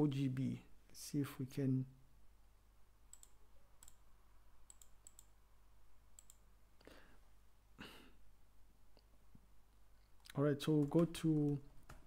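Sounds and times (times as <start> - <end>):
computer mouse clicks: 3.1 - 4.0, 4.6 - 5.4, 6.2 - 6.4.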